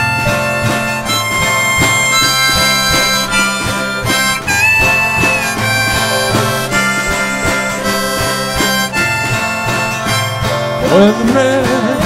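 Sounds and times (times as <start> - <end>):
reedy lead melody: 0.0 - 12.0
strummed ukuleles and guitars: 0.0 - 12.0.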